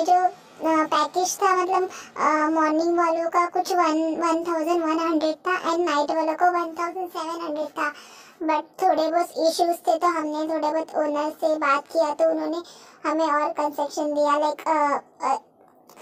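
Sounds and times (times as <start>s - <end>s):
woman singing unaccompanied: 0.0s - 7.9s.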